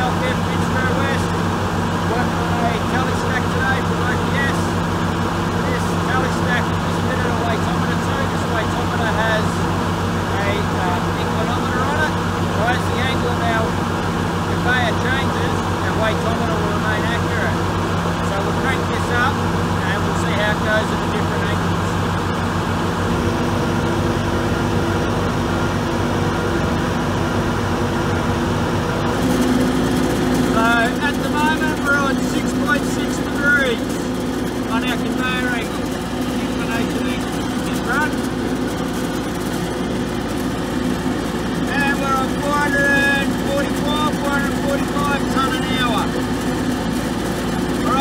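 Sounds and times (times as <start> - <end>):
conveyor machine hum: 0.0 - 48.0.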